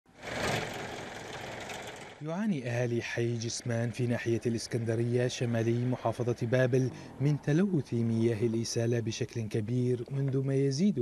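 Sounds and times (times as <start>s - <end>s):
steady mechanical noise: 0.2s - 2.2s.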